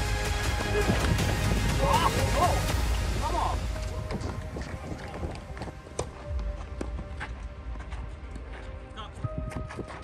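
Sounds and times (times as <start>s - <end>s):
background music: 0.0s - 10.0s
players' footsteps: 3.6s - 10.0s.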